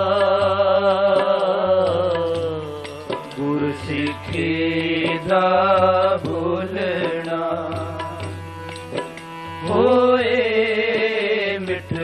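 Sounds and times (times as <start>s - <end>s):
men singing long held notes: 0.0s - 8.3s, 9.6s - 12.0s
harmonium drone: 0.0s - 12.0s
tabla strokes: 0.0s - 12.0s.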